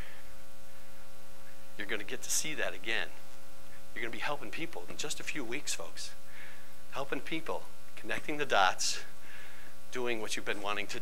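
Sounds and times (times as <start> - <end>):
electrical mains hum: 0.0 - 11.0
man talking: 1.8 - 3.2, 3.9 - 6.2, 6.9 - 9.2, 9.9 - 11.0.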